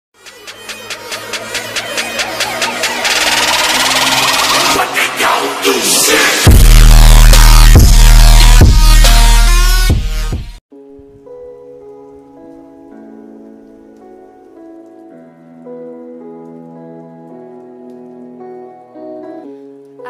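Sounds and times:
soft keyboard chords: 10.7 - 20.0
faint crackle: 11.2 - 20.0.

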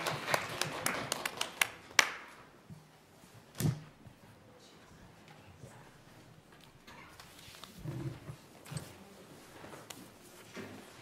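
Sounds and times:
light clapping: 0.0 - 2.2.

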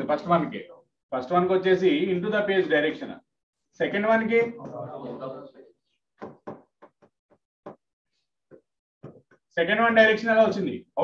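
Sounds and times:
stylus tapping on glass: 6.2 - 7.1.

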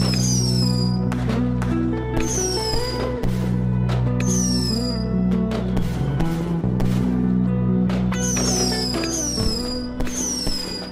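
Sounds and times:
firework whistles falling in pitch: 0.0 - 1.0, 2.2 - 3.0, 4.2 - 5.1, 8.2 - 10.9
background music: 0.0 - 10.9.

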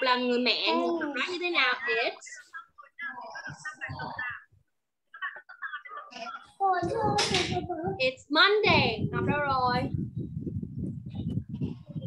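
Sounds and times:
crackling and rumbling microphone noise: 1.8 - 12.0.

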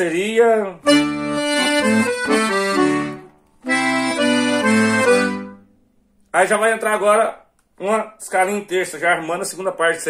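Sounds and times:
accordion playing held notes: 0.8 - 5.7.

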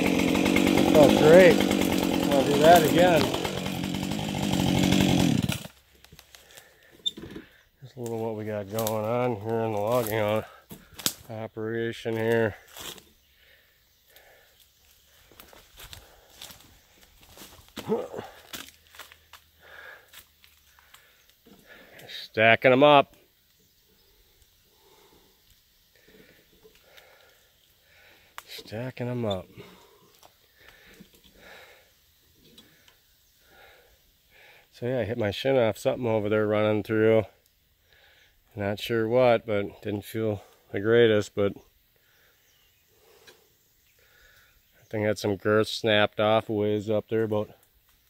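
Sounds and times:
chainsaw running: 0.0 - 7.5, 8.1 - 11.2, 15.1 - 22.0, 24.7 - 25.3, 26.0 - 33.9
faint breaths: 6.2 - 7.8, 10.0 - 11.3, 12.5 - 22.2, 23.8 - 28.6, 29.4 - 34.8, 37.3 - 38.6, 41.9 - 44.8.

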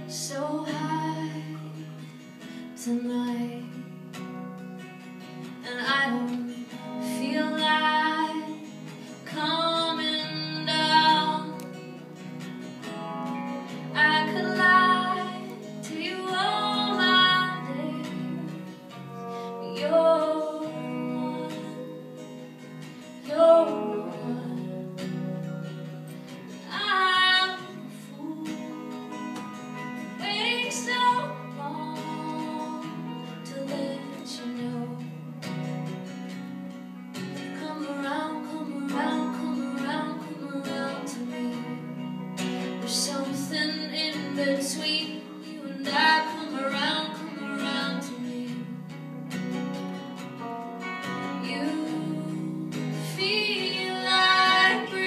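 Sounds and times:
woman singing: 0.0 - 4.2, 5.5 - 35.6, 37.4 - 49.0, 51.0 - 55.0
guitar strumming chords: 0.0 - 55.0.

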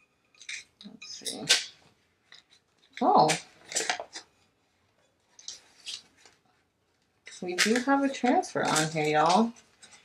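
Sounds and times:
paper crinkling: 5.2 - 10.0.

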